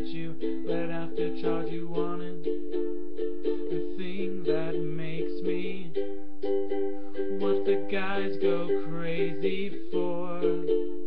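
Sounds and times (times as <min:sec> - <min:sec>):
ukulele strumming chords: 0:00.0 - 0:11.0.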